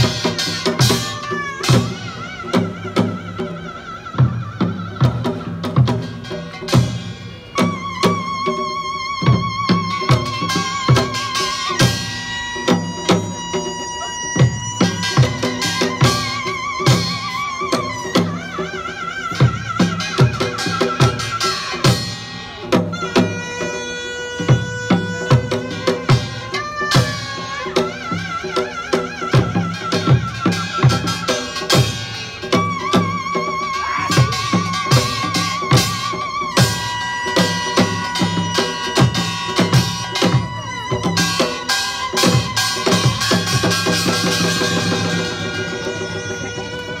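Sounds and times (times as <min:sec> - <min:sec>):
drum strikes: 0:00.0 - 0:47.0.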